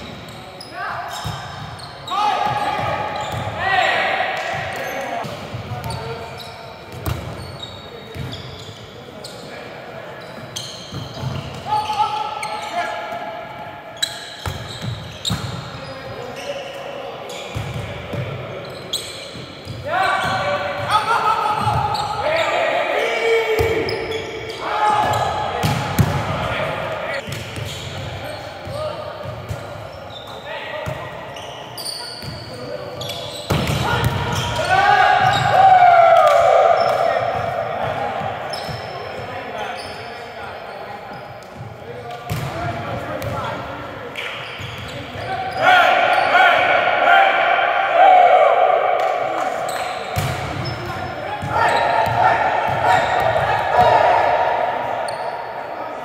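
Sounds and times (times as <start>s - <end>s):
players shouting: 2.1s - 5.2s, 19.8s - 27.2s, 33.6s - 38.9s, 45.2s - 56.0s.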